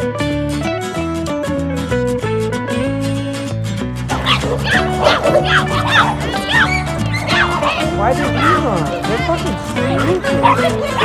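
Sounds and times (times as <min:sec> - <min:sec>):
background music: 0:00.0 - 0:11.0
dogs barking and yelping: 0:04.1 - 0:11.0.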